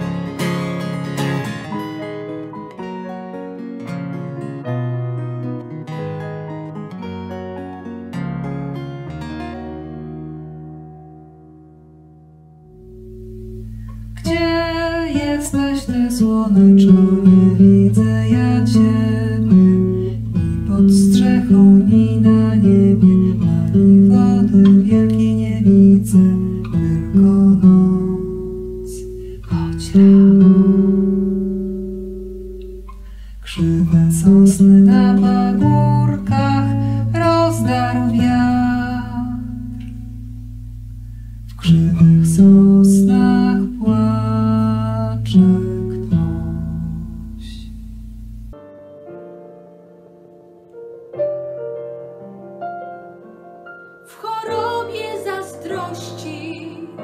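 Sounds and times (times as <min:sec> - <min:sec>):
classical guitar: 0:00.0 - 0:57.0
woman singing: 0:14.2 - 0:30.4, 0:33.5 - 0:39.7, 0:41.5 - 0:46.6, 0:54.0 - 0:57.0.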